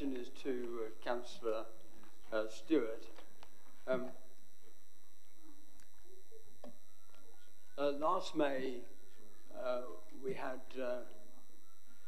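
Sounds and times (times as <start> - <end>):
faint high-pitched tones: 0.0 - 12.0
steady electrical hum: 0.0 - 12.0.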